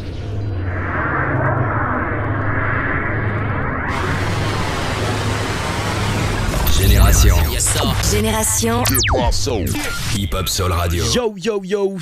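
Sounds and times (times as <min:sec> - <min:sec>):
rumbling whoosh with swirl: 0:06.3 - 0:08.0.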